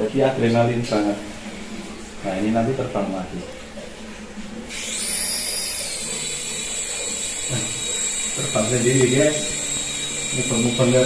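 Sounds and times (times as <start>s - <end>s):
toy helicopter motor whirring: 4.7s - 11.0s.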